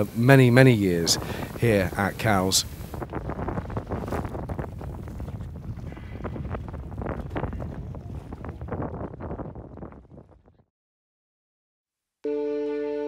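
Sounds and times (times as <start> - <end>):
boat engine rumble: 0.0 - 8.9
wind buffeting microphone: 0.0 - 10.7.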